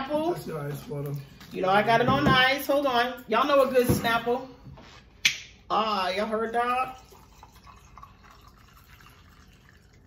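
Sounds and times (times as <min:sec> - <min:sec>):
drink poured over ice: 0:07.0 - 0:10.0.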